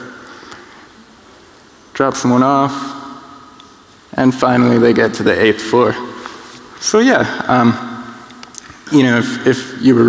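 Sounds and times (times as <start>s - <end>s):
faint hiss: 0.0s - 10.0s
man's voice: 1.9s - 3.2s, 4.1s - 10.0s.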